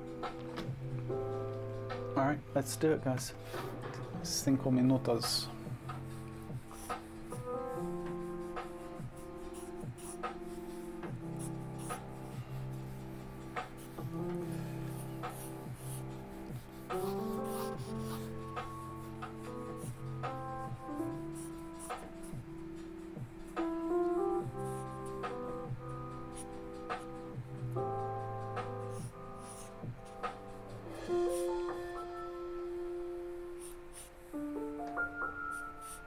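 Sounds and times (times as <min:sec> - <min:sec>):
instrumental background music: 0:00.0 - 0:36.0
pencil scratching on paper: 0:05.2 - 0:22.3, 0:28.7 - 0:30.5, 0:35.4 - 0:36.0.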